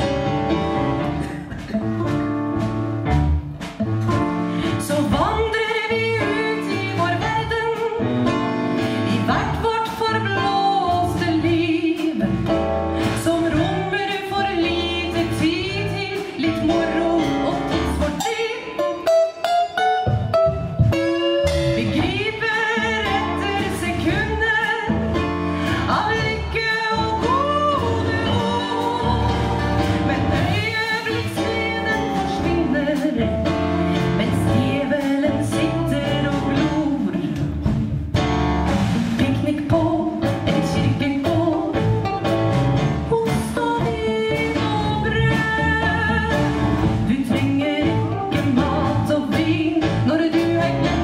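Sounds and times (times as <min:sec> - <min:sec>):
electric bass: 0:00.0 - 0:18.2, 0:20.1 - 0:51.0
drum kit beat: 0:00.0 - 0:51.0
live band playing: 0:00.0 - 0:51.0
woman singing: 0:04.6 - 0:08.4, 0:09.1 - 0:19.1, 0:21.6 - 0:37.7, 0:39.2 - 0:42.0, 0:43.0 - 0:51.0
plucked notes: 0:16.6 - 0:36.8
electric guitar: 0:18.7 - 0:22.1.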